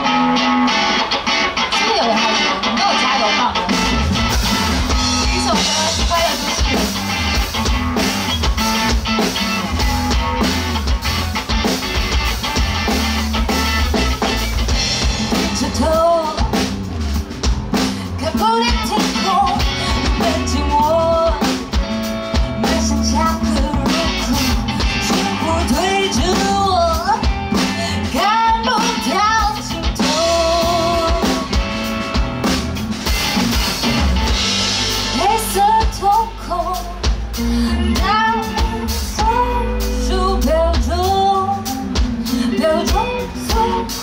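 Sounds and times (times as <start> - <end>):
rock band playing: 0.0 - 44.0
woman singing lead vocal: 5.0 - 7.0, 15.3 - 16.6, 17.8 - 31.6, 35.1 - 44.0.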